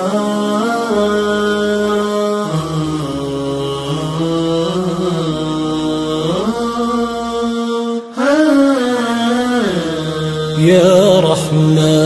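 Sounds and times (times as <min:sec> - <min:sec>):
wordless vocal chant: 0:00.0 - 0:12.0.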